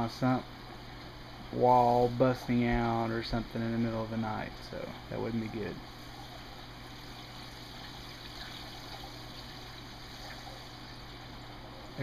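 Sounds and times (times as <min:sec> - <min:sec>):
water running into a tank: 0:00.0 - 0:12.0.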